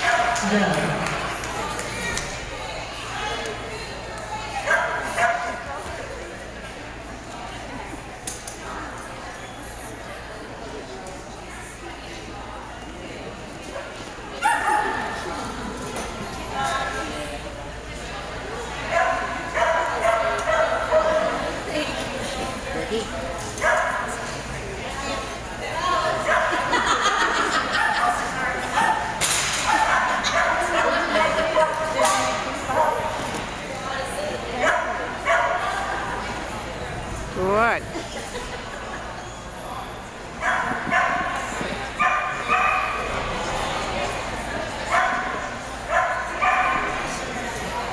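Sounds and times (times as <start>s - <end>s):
murmur of voices: 0.0s - 47.9s
dog barking: 14.4s - 15.1s, 18.9s - 21.3s, 34.6s - 35.6s, 40.4s - 41.4s, 42.0s - 43.1s, 44.9s - 45.3s, 45.9s - 47.0s.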